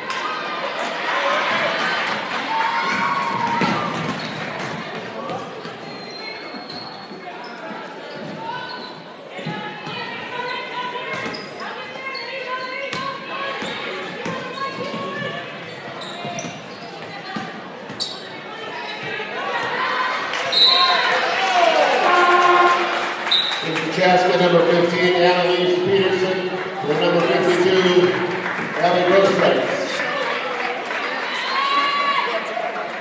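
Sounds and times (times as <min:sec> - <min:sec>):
players and spectators voices: 0:00.0 - 0:33.0.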